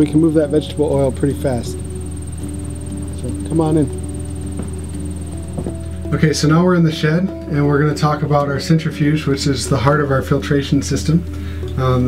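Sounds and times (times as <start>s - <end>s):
low hum with steady tones: 0.0s - 12.0s
faint knocks: 4.5s - 4.9s, 5.5s - 5.9s.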